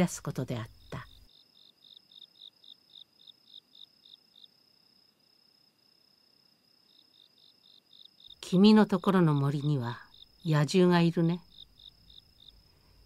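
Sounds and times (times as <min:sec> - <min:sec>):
faint cricket chirping: 0:00.0 - 0:13.0.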